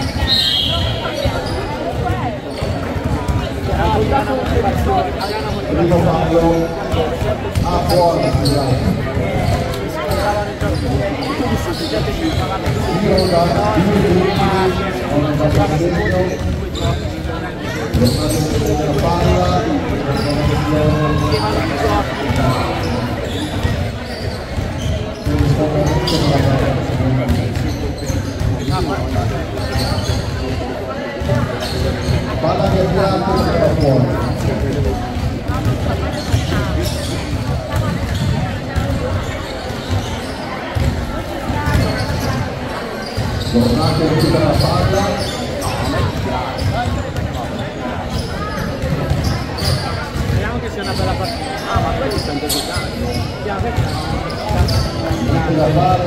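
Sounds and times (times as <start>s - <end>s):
voices: 0.0s - 56.0s
basketball bouncing on wooden floor: 48.8s - 50.4s.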